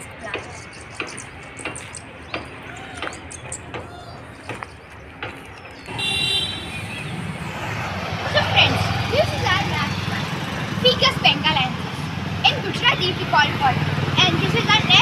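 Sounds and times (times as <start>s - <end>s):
road traffic rumble: 0.0s - 15.0s
footsteps on dirt road: 0.3s - 8.2s
vehicle horn: 5.9s - 7.4s.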